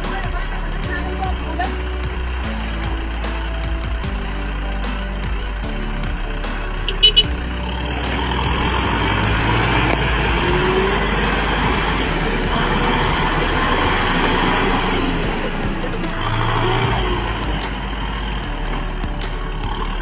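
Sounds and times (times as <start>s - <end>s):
background music: 0.0s - 20.0s
tractor engine working hard: 0.0s - 20.0s.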